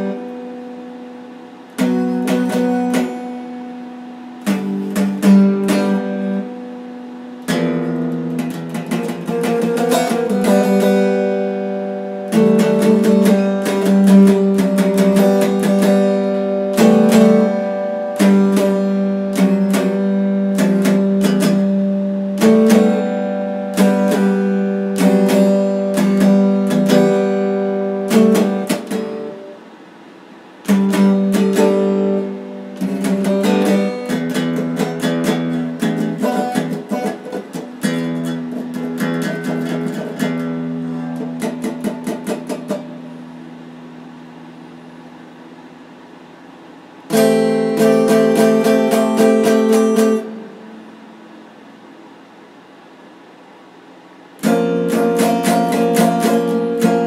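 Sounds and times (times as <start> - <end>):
electric guitar strumming: 0.0 - 52.0, 53.6 - 57.0.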